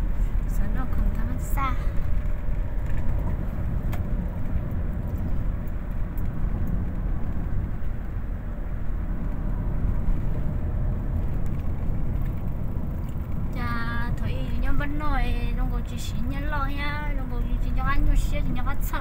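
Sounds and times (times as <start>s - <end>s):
tyres on paved road: 0.0s - 19.0s
vehicle engine rumble: 0.0s - 19.0s.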